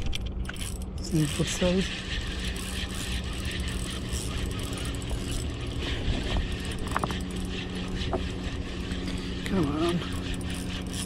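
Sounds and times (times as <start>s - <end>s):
fishing reel whirring and clicking: 0.0s - 11.0s.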